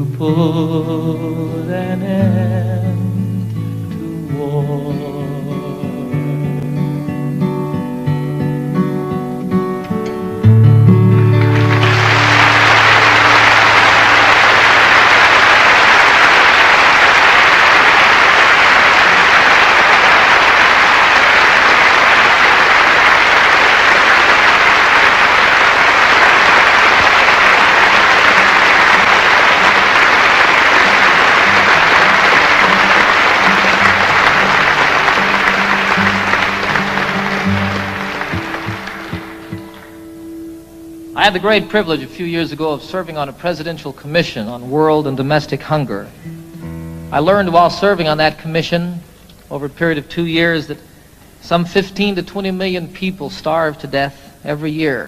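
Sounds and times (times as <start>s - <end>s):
audience applauding: 10.9s - 40.2s.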